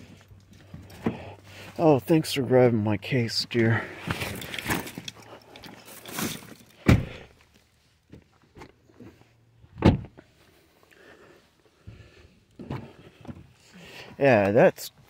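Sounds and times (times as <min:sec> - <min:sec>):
car doors shutting: 0:06.8 - 0:07.3, 0:09.8 - 0:10.2.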